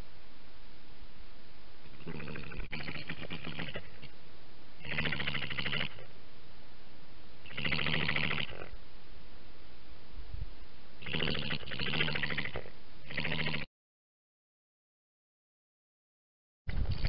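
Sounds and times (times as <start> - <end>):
badger purring call: 1.9 - 4.1, 4.8 - 6.1, 7.4 - 8.8, 11.0 - 13.7.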